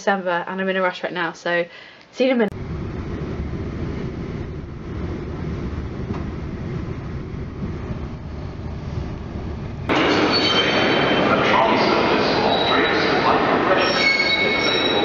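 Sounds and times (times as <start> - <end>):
train rumbling inside carriage: 2.5 - 15.0
busy station concourse din: 5.0 - 15.0
high squealing tones: 9.9 - 15.0.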